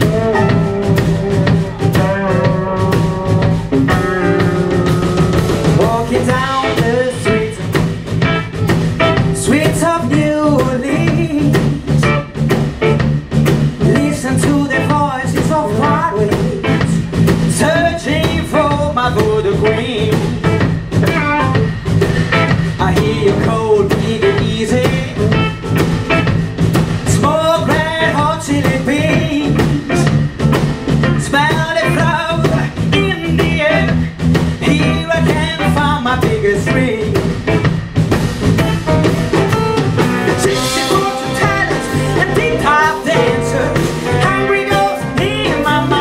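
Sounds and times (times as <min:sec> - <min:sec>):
electric guitar lead melody: 0:00.0 - 0:09.5, 0:19.6 - 0:23.3, 0:25.1 - 0:26.8, 0:36.7 - 0:46.0
bass guitar: 0:00.0 - 0:46.0
drums: 0:00.0 - 0:46.0.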